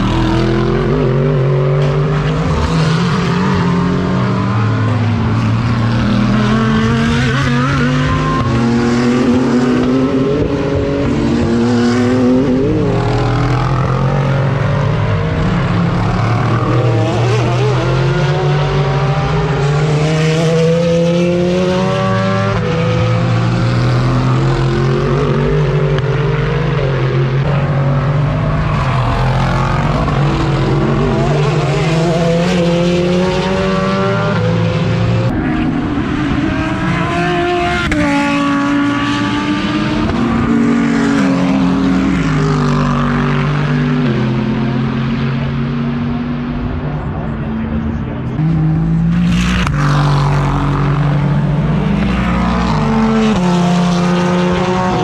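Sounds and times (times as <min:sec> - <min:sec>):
race car engines accelerating: 0:00.0 - 0:55.0.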